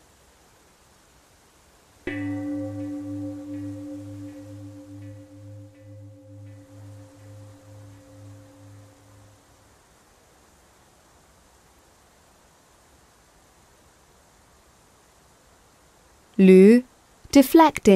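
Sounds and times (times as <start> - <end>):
meditation chime ringing: 2.0 - 9.6.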